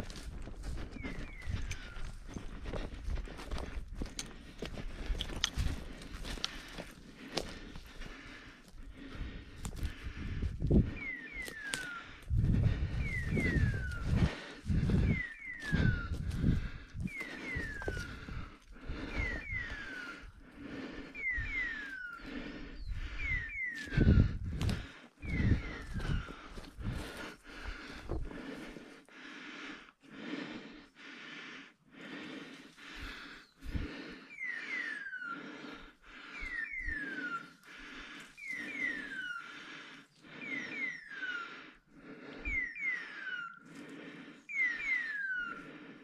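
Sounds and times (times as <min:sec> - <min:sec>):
twigs snapping: 0:04.0 - 0:07.5
falling whistle-like call: 0:10.9 - 0:12.2, 0:17.1 - 0:20.4, 0:34.2 - 0:35.5, 0:36.3 - 0:37.7, 0:38.4 - 0:39.6, 0:40.4 - 0:41.8, 0:42.4 - 0:43.8, 0:44.4 - 0:46.0.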